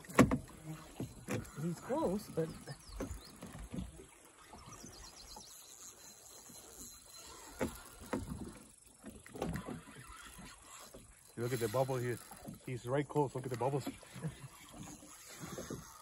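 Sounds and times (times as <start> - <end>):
light knocks against boat: 0.0 - 1.5
water lapping at boat hull: 0.0 - 16.0.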